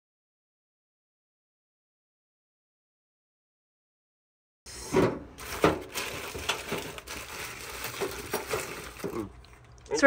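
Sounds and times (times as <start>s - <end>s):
plastic bags crinkling: 5.4s - 10.0s.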